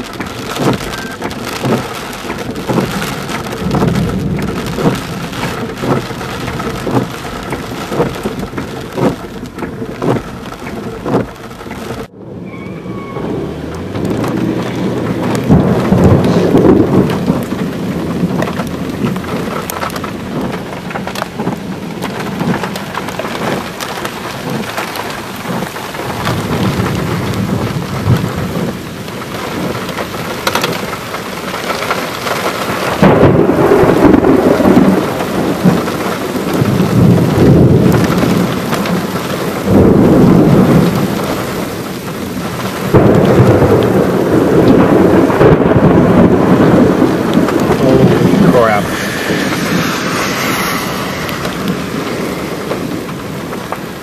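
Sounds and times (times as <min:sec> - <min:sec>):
heavy rain: 0:00.0 - 0:54.0
wind: 0:00.0 - 0:54.0
loud low rumbling surges: 0:45.0 - 0:54.0.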